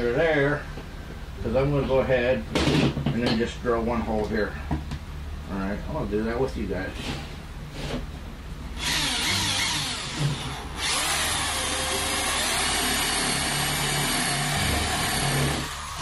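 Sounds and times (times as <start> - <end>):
power drill boring wood: 8.8 - 16.0.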